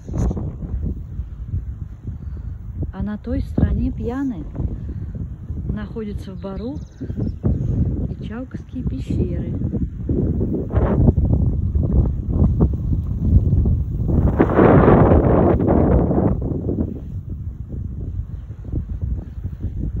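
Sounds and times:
wind blowing across microphone: 0:00.0 - 0:20.0.

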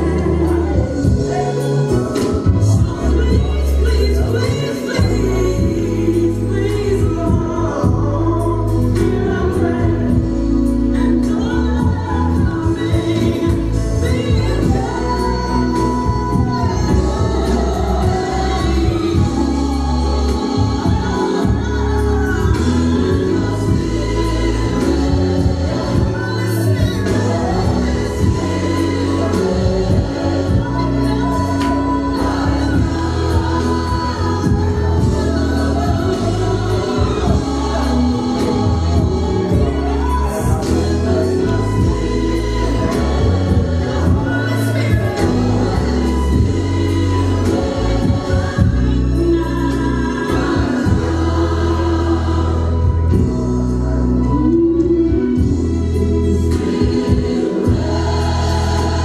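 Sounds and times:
band playing: 0:00.0 - 0:59.0
gospel choir singing: 0:00.0 - 0:59.0
sustained bass notes: 0:00.0 - 0:59.0.

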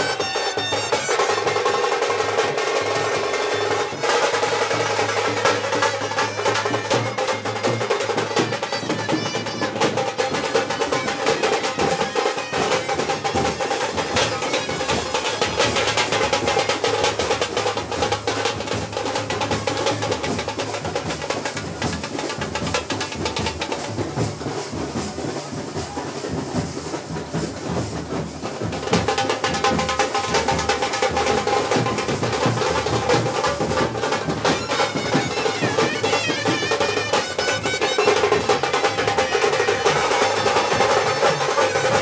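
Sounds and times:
rapid dense drumming: 0:00.0 - 0:42.0.

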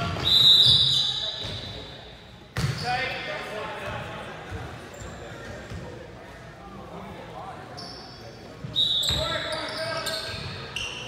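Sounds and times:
sneakers squeaking: 0:00.0 - 0:06.1, 0:07.6 - 0:11.0.

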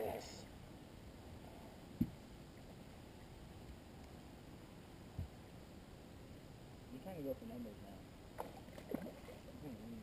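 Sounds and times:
water splashing: 0:08.3 - 0:10.0.

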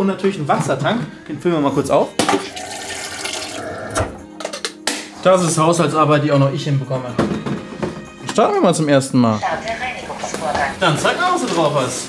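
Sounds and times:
music: 0:00.0 - 0:12.0
tap water running into plastic tank: 0:02.3 - 0:03.6.

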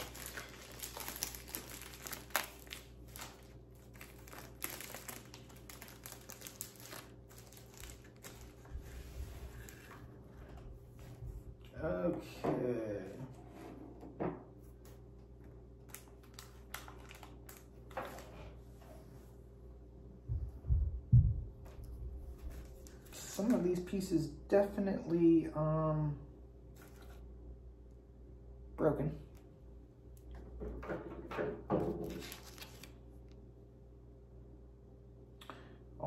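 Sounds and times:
knife slitting cellophane bag: 0:00.0 - 0:08.6
plastic wrapping crinkling: 0:00.0 - 0:10.0, 0:15.8 - 0:18.3, 0:32.0 - 0:33.0.

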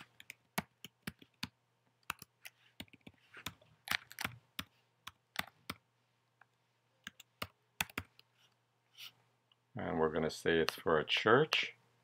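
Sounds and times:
computer keyboard typing: 0:00.0 - 0:05.8, 0:07.0 - 0:08.2.

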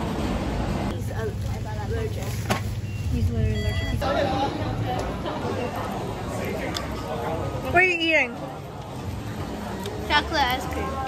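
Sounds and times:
checkout beep: 0:02.7 - 0:04.3.

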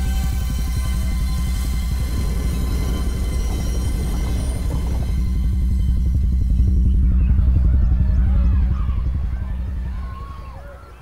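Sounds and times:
deep pulsing low drone: 0:00.0 - 0:11.0.

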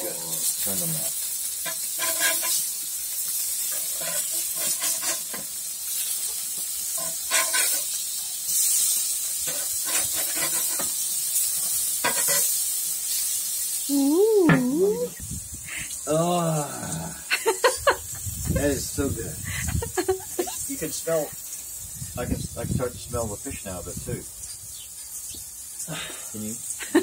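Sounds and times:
tongs clicking and scraping on grate: 0:00.0 - 0:13.3
patties sizzling on a grill: 0:00.0 - 0:27.0
person saying ooh: 0:13.9 - 0:15.2, 0:16.1 - 0:17.2.

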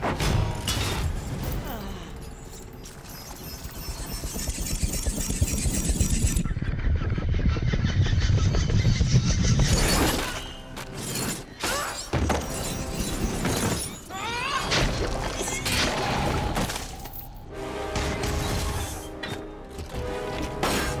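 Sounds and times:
dark low score music: 0:00.0 - 0:21.0.

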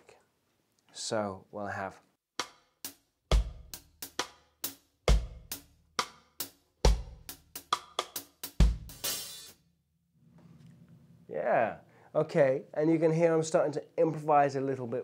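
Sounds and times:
drum kit reggae groove: 0:02.4 - 0:09.6
shuffled hi-hat pattern: 0:02.4 - 0:09.6.

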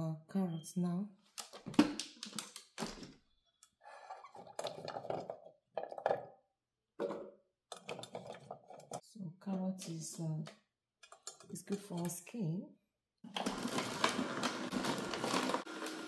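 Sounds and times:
juicer clatter: 0:04.4 - 0:06.2, 0:07.0 - 0:09.0, 0:13.3 - 0:16.0.

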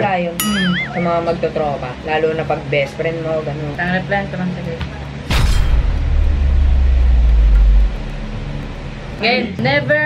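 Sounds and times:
loud deep low rumble: 0:05.3 - 0:09.4.

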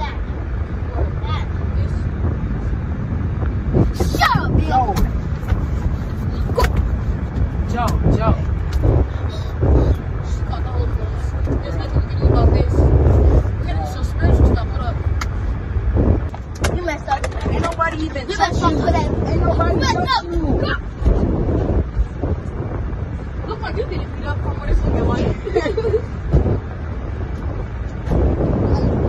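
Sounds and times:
low rumble: 0:00.0 - 0:29.0
bodies bumping over car seats: 0:03.4 - 0:09.0.

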